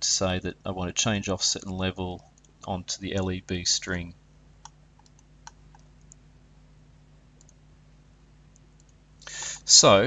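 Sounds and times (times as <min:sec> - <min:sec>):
low electrical hum: 0:00.0 - 0:10.0
computer mouse clicks: 0:04.6 - 0:06.2, 0:07.4 - 0:07.6, 0:08.5 - 0:09.0.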